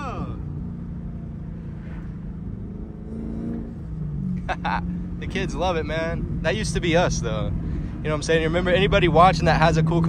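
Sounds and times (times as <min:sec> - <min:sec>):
car engine drone from cabin: 0:00.0 - 0:10.0
road noise: 0:00.0 - 0:10.0.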